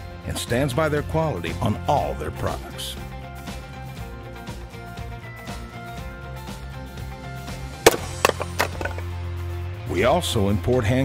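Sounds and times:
soft background music: 0:00.0 - 0:03.9
axe striking wood: 0:07.9 - 0:09.0
wooden knocks and clatters: 0:07.9 - 0:09.0.

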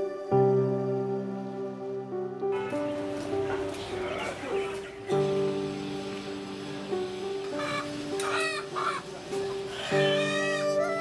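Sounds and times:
background music: 0:00.0 - 0:11.0
chicken calling: 0:02.5 - 0:05.1, 0:07.4 - 0:11.0.

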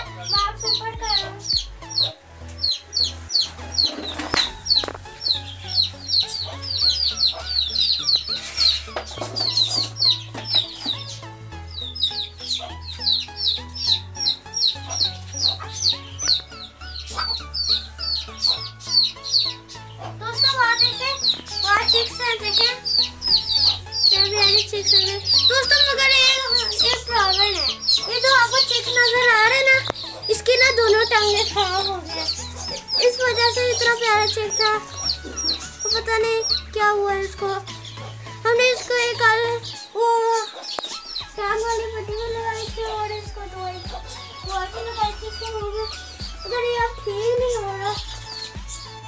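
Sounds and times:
background music with bass: 0:00.0 - 0:49.0
chicks peeping: 0:00.0 - 0:49.0.

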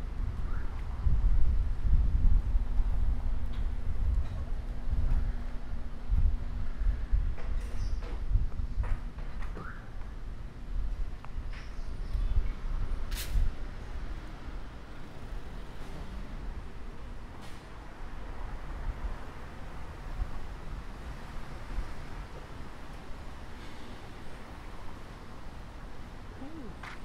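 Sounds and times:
wind buffeting microphone: 0:00.0 - 0:23.6
street traffic: 0:00.0 - 0:27.0.

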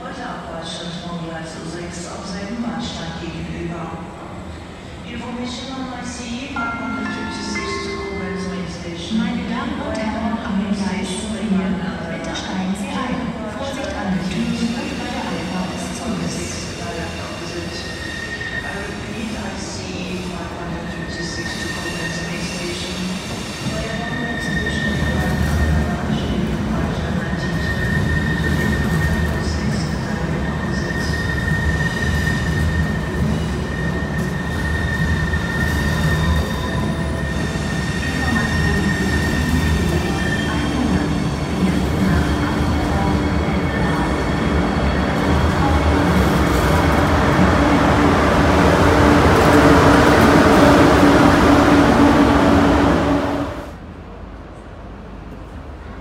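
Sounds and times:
train wheel squeal: 0:14.6 - 0:19.2, 0:20.9 - 0:26.0, 0:27.2 - 0:45.0
train hum and rumble: 0:18.6 - 0:56.0.

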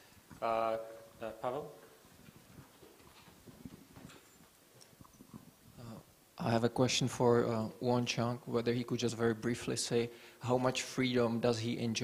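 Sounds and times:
faint footsteps: 0:00.0 - 0:05.8.

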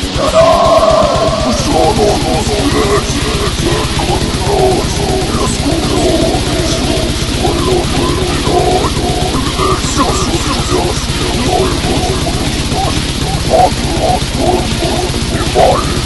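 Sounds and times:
distorted guitar riffing: 0:00.0 - 0:16.0
growled vocals: 0:00.0 - 0:16.0
rapid drumming: 0:00.0 - 0:16.0.

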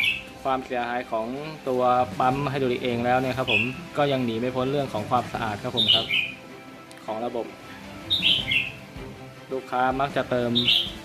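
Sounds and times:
small bird chirping: 0:00.0 - 0:00.4, 0:03.3 - 0:03.8, 0:05.7 - 0:06.4, 0:08.0 - 0:08.9, 0:10.5 - 0:11.0
faint background music: 0:00.0 - 0:11.0
man's voice: 0:00.5 - 0:06.3, 0:09.5 - 0:10.9.

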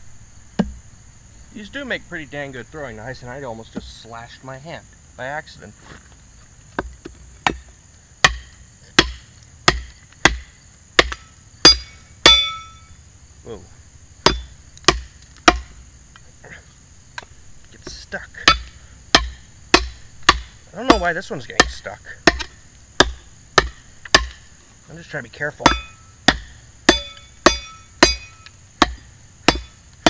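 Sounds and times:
knife chopping wood: 0:00.6 - 0:00.8, 0:06.7 - 0:12.6, 0:14.2 - 0:15.7, 0:17.2 - 0:24.5, 0:25.6 - 0:30.0
steel blade ringing: 0:11.7 - 0:12.9, 0:25.6 - 0:26.1, 0:26.9 - 0:28.5.

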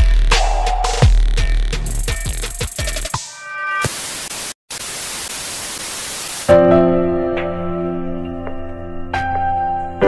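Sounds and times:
tv static hiss: 0:03.8 - 0:06.5.

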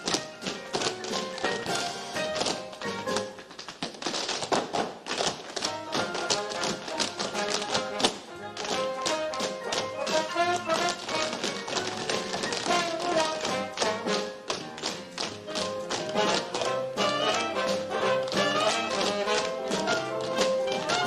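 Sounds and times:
orchestra playing swing tune: 0:00.0 - 0:03.3, 0:05.6 - 0:21.0
tap shoes striking stage floor: 0:00.0 - 0:21.0.

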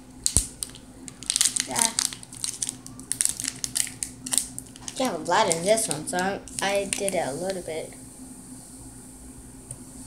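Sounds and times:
plastic packet crinkling: 0:00.2 - 0:07.6.

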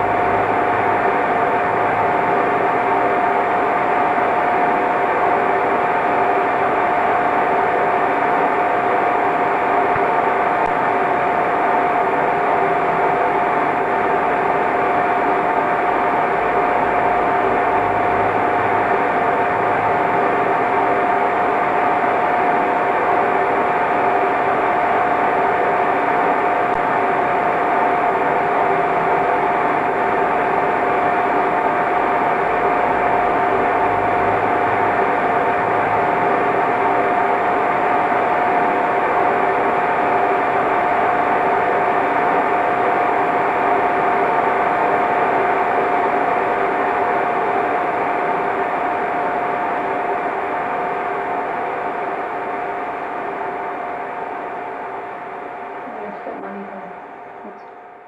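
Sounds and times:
held hum tone: 0:50.0 - 0:58.0.

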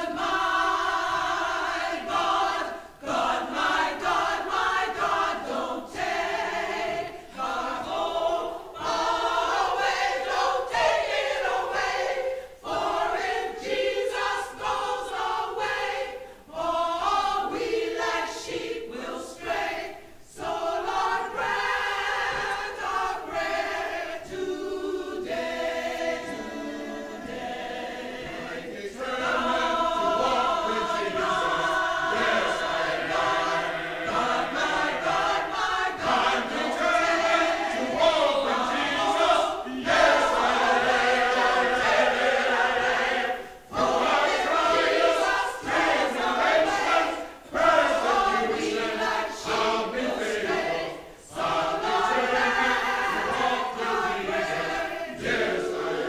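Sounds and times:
mixed choir singing: 0:00.0 - 0:56.0.

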